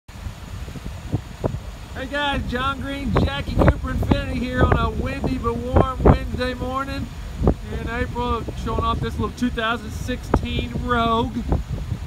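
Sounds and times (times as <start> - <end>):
wind buffeting microphone: 0.1 - 12.0.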